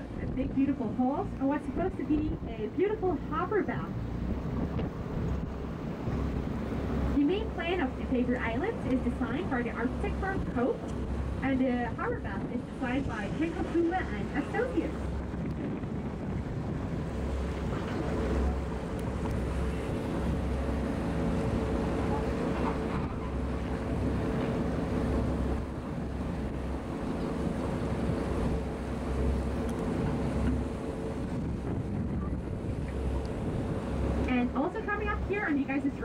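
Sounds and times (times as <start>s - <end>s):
boat engine running: 0.0s - 36.0s
water rushing past hull: 0.0s - 36.0s
wind on microphone: 0.0s - 36.0s.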